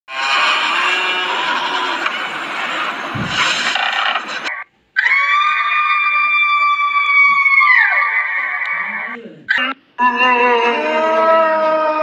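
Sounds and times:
shrill horror sound effect: 0:00.1 - 0:03.5.

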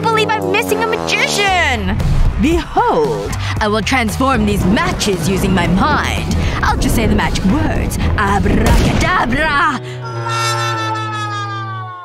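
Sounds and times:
steady low drone: 0:00.0 - 0:11.8.

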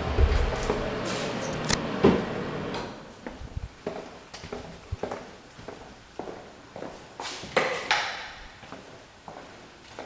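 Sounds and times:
footsteps on a hard floor: 0:00.0 - 0:01.4, 0:03.2 - 0:08.0, 0:08.6 - 0:10.0.

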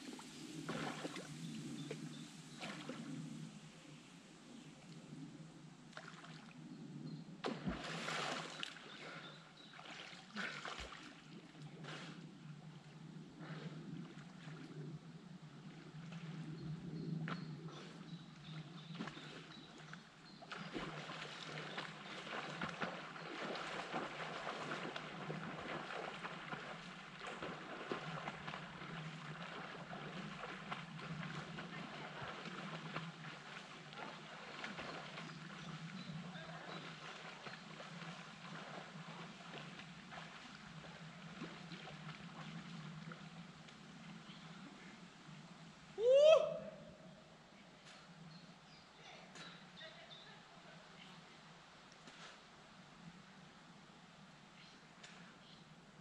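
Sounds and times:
small waves lapping against a pier: 0:00.0 - 0:06.8, 0:07.4 - 0:16.6, 0:17.4 - 0:45.9.

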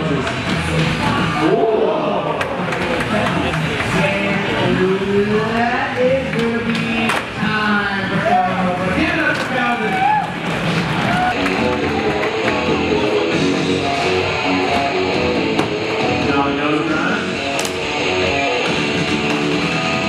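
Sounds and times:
guitar-led background music: 0:11.0 - 0:20.0.

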